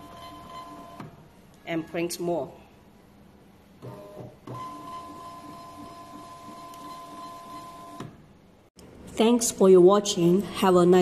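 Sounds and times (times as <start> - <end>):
printer start-up noise: 3.8 - 8.1.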